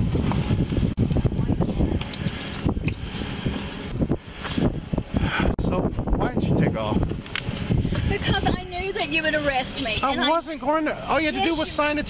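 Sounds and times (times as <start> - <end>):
wind buffeting microphone: 0.0 - 10.2.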